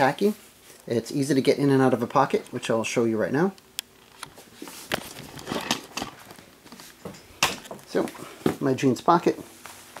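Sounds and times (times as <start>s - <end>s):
clothing rustle: 4.3s - 10.0s.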